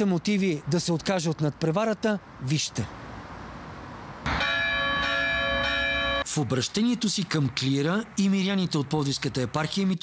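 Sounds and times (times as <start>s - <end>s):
faint outdoor background noise: 0.0s - 10.0s
church bell ringing: 4.3s - 6.4s.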